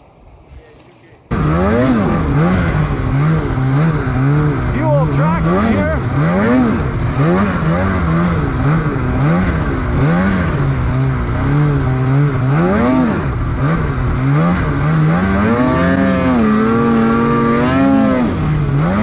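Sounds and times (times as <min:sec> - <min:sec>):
snowmobile engine revving: 0:01.3 - 0:19.0.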